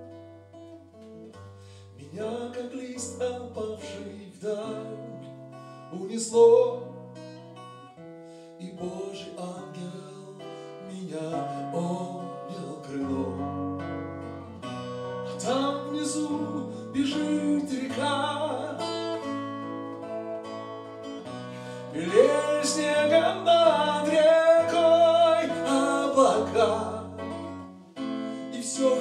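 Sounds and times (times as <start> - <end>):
guitar picked and strummed chords: 0.0 - 29.0.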